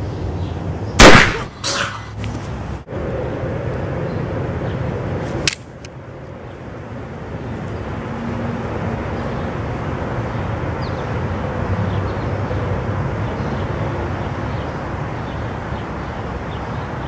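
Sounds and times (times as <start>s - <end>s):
outdoor background noise: 0.0s - 17.0s
weaker blast: 1.0s - 1.8s
gunshot: 1.0s - 1.9s
sharp click: 5.4s - 6.0s.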